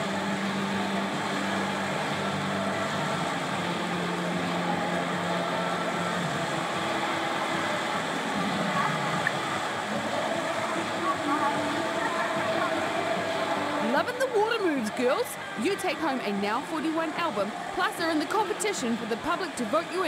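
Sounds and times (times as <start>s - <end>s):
swimmers splashing in pool: 0.0s - 20.0s.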